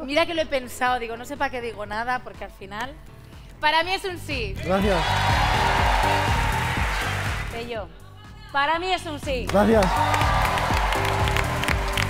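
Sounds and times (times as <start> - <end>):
background music with bass line: 0.9 - 12.0
audience applauding and cheering: 4.7 - 7.6, 9.5 - 12.0.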